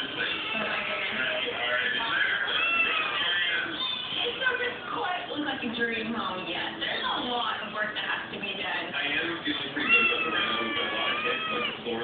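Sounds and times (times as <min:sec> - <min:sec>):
television music: 0:00.0 - 0:12.0
television speech: 0:00.0 - 0:12.0.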